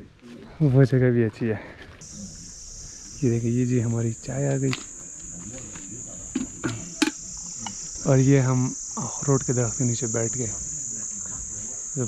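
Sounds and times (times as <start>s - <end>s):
insect chorus shrilling: 2.0s - 12.0s.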